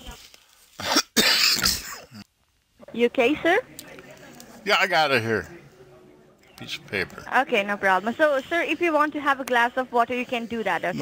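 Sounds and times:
person coughing: 0:00.8 - 0:02.2.

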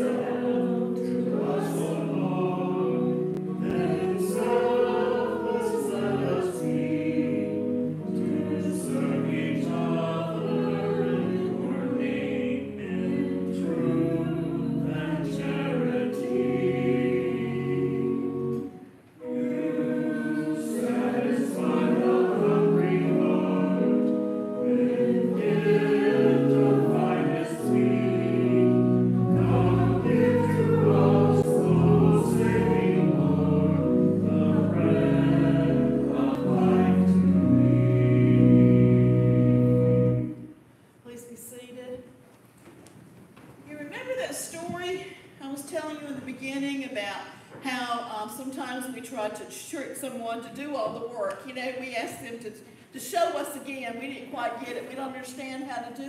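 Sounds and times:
mixed choir singing a hymn: 0:00.0 - 0:40.4.

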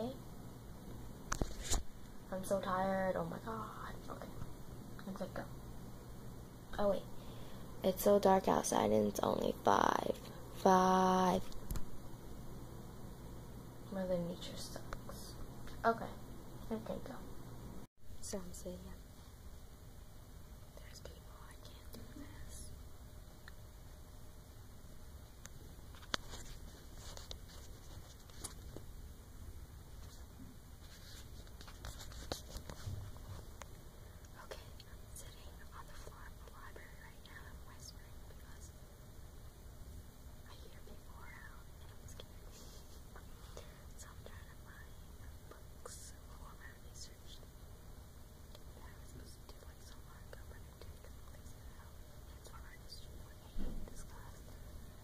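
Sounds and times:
low room rumble: 0:00.0 - 0:55.0
faint whispering: 0:02.3 - 0:04.4, 0:20.7 - 0:22.8, 0:34.0 - 0:38.8, 0:40.4 - 0:47.5, 0:48.4 - 0:55.0.

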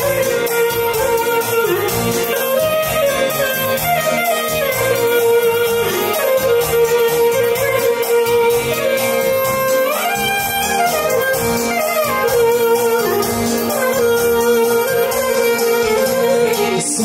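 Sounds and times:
clarinet melody: 0:00.0 - 0:17.0
electronic organ accompaniment: 0:00.0 - 0:17.0.

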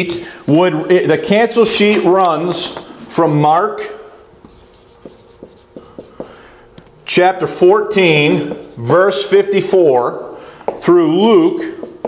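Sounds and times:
marker squeaking on whiteboard: 0:04.4 - 0:06.4.

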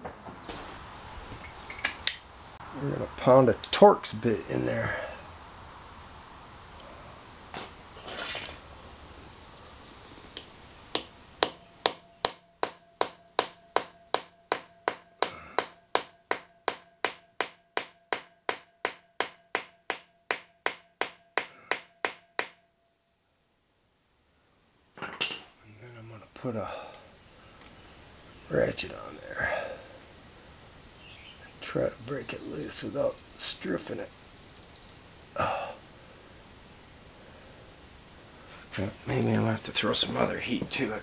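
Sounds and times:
hammer striking metal bit: 0:11.0 - 0:22.6.

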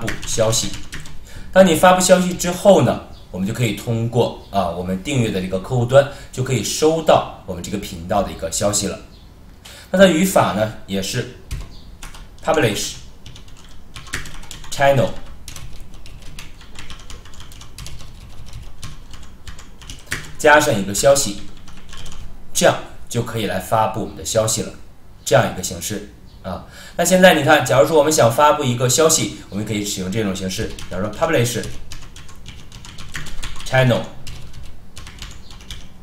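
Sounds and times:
computer keyboard typing: 0:00.0 - 0:01.2, 0:11.5 - 0:22.3, 0:30.4 - 0:36.0.

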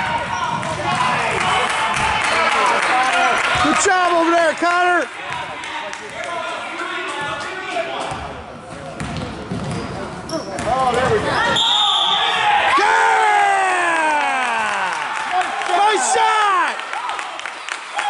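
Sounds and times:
basketball bouncing: 0:08.1 - 0:09.9
sneakers squeaking on hardwood floor: 0:08.1 - 0:12.5.

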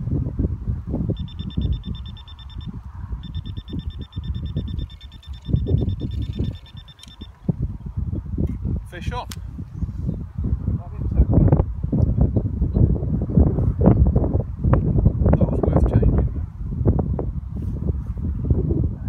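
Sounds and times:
wind rumbling on microphone: 0:00.0 - 0:19.0
bite alarm rapid bleeps: 0:01.2 - 0:07.3.

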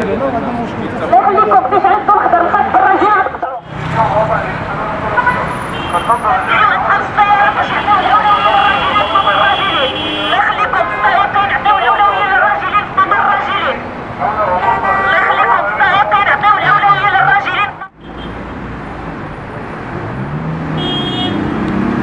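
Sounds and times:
people's voices: 0:00.0 - 0:17.9
street traffic: 0:00.0 - 0:22.0
man's voice: 0:03.9 - 0:05.2, 0:05.9 - 0:17.8.

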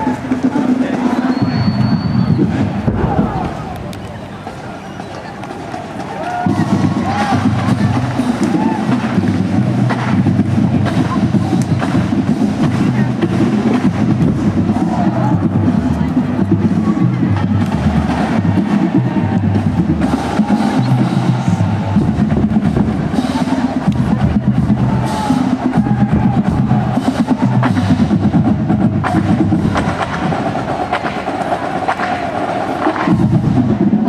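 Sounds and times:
snare and bass drums beating: 0:05.9 - 0:34.0.

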